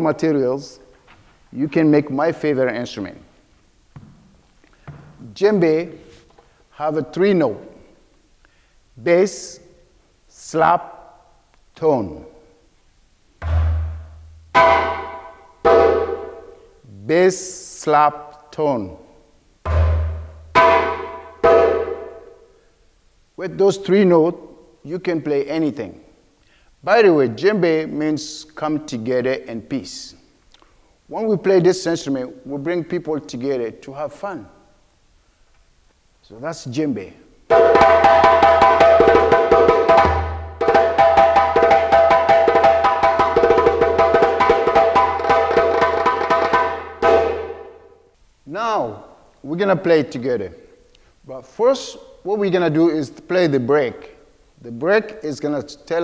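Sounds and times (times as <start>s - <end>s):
djembe struck by hand: 13.4s - 16.5s, 19.7s - 22.3s, 37.5s - 47.8s.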